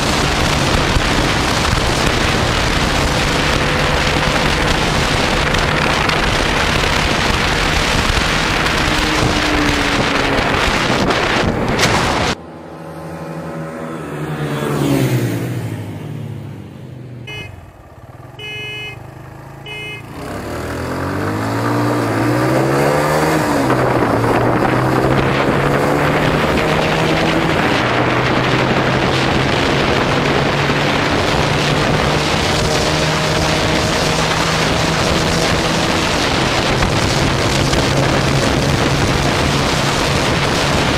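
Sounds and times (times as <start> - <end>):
wind rush on microphone: 0.0 - 12.5, 21.2 - 40.9
motorcycle engine revving: 0.0 - 40.9
short beeps: 17.3 - 17.7, 18.4 - 19.1, 19.7 - 20.1.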